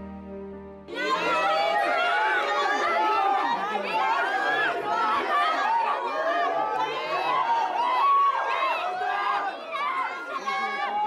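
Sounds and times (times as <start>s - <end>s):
crowd chatter: 0.9s - 11.0s.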